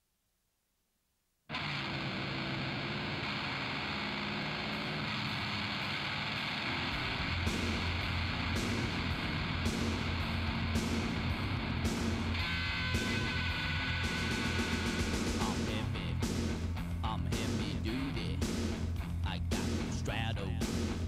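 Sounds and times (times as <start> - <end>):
distorted electric guitar: 1.5 - 21.0
drums with pulsing low beat: 6.8 - 21.0.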